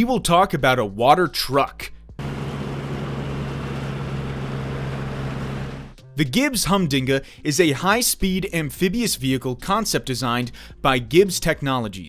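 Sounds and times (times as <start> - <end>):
boat engine running: 2.2 - 6.0.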